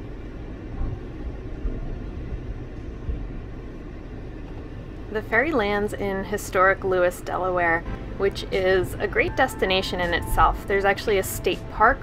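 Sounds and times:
vehicle rumbling: 0.0 - 12.0.

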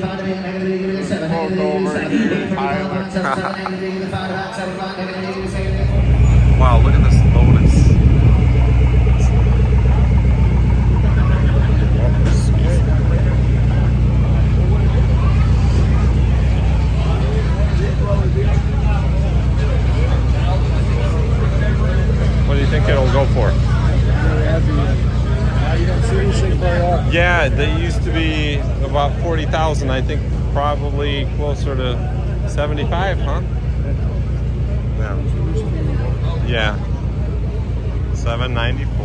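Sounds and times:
people chatting: 0.0 - 39.0
engine idling: 4.9 - 39.0.

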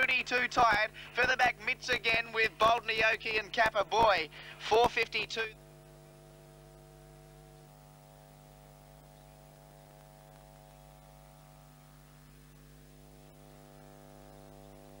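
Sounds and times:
electrical mains hum: 0.0 - 15.0
buzz of evenly spaced tones: 5.4 - 15.0.

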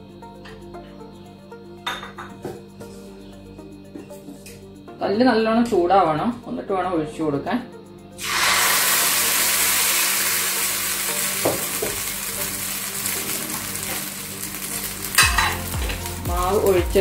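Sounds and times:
batter sizzling in hot pan: 8.2 - 17.0.

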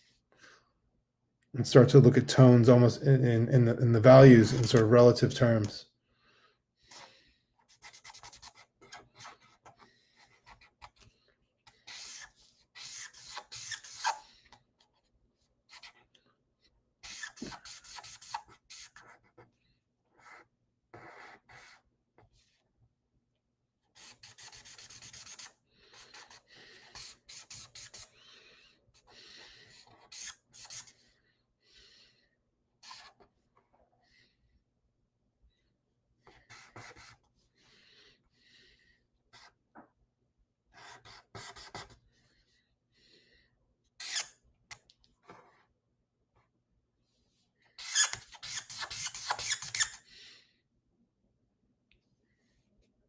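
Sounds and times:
pencil scribbling on paper: 7.6 - 11.0, 11.7 - 14.2, 15.7 - 16.1, 17.0 - 19.5, 20.1 - 21.8, 24.0 - 28.1, 29.0 - 31.0, 36.2 - 37.3, 39.3 - 39.6, 40.7 - 42.0.

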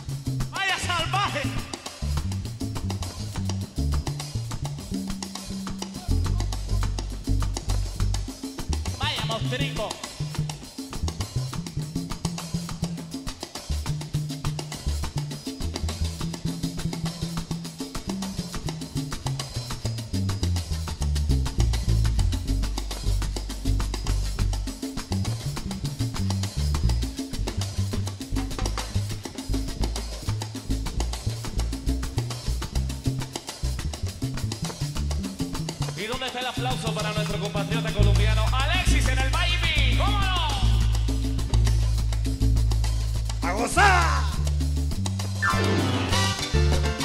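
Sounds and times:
bass solo: 0.0 - 12.1, 18.7 - 35.9, 36.6 - 47.0
steady percussion: 0.0 - 47.0.

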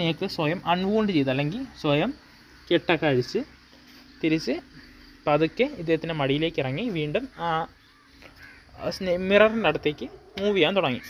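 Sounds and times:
person talking: 8.8 - 11.0.

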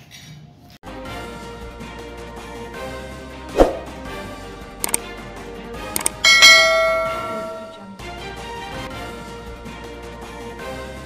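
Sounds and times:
mouse double click: 6.0 - 6.2
notification bell chime: 6.2 - 7.9.

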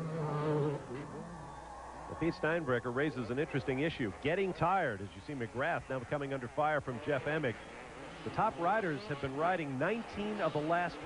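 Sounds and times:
distant motocross bikes revving: 0.0 - 11.0.

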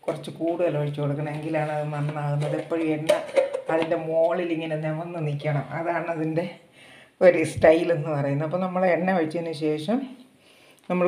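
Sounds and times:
person talking: 0.0 - 10.2.

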